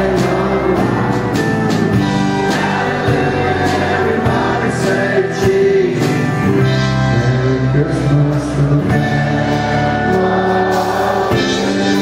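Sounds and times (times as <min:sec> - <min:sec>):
acoustic guitar: 0:00.0 - 0:12.0
electric bass: 0:00.0 - 0:12.0
people singing: 0:00.0 - 0:12.0.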